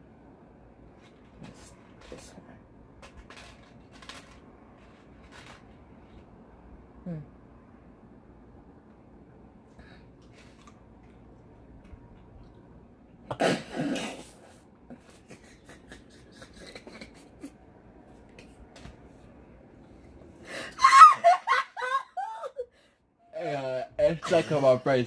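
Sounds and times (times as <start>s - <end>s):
sneeze-like burst of breath: 13.3s - 14.6s
people laughing: 15.1s - 17.5s
loud vocal outburst with laughter: 20.6s - 22.3s.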